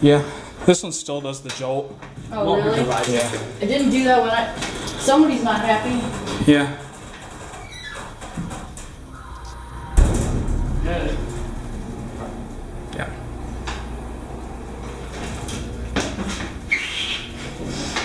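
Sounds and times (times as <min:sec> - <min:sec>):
hydraulic pump humming: 0:03.6 - 0:18.0
elevator car jolt: 0:03.8 - 0:18.0.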